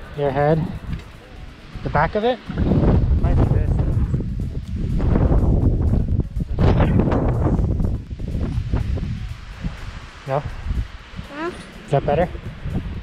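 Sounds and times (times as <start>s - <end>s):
gusty wind on microphone: 0.0s - 13.0s
microphone handling noise: 2.5s - 11.0s.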